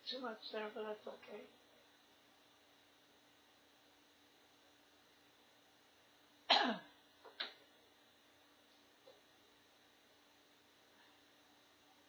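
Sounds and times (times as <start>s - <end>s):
faint steady hum: 0.0s - 12.0s
person coughing: 6.5s - 6.9s.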